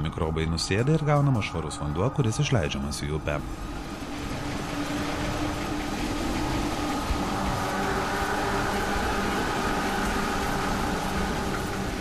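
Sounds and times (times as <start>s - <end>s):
machinery hum: 0.0s - 12.0s
water running and churning: 0.3s - 12.0s.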